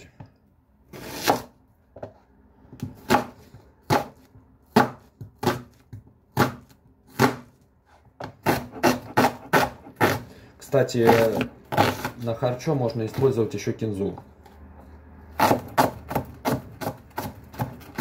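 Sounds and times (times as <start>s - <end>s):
knife chopping onion on board: 0.9s - 10.3s, 10.9s - 12.2s, 12.9s - 14.3s, 15.3s - 18.0s.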